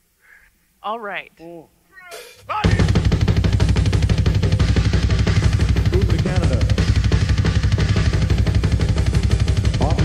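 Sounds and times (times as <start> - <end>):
live metal band playing: 2.1 - 10.0
rapid kick drum: 2.5 - 10.0.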